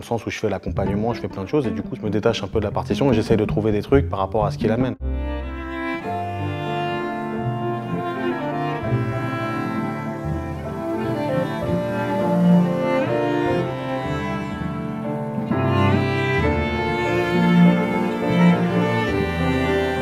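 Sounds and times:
bowed cello: 0.6s - 20.0s
violin: 0.6s - 20.0s
piano: 0.8s - 20.0s.

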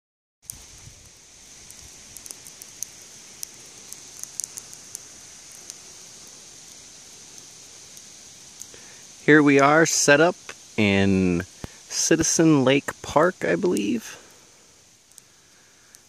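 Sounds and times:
light clicks and crackles: 0.4s - 8.9s, 11.6s - 11.8s, 15.0s - 16.0s.

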